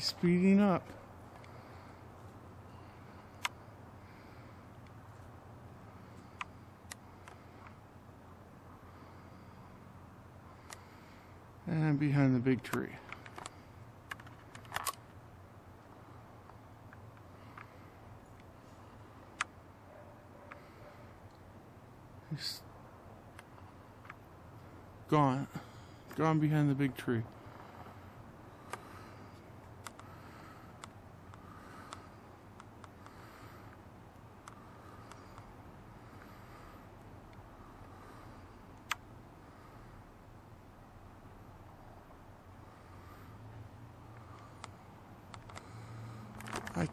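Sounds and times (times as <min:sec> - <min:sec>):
low background hum: 0:00.0 - 0:46.9
low steady background noise: 0:00.0 - 0:46.9.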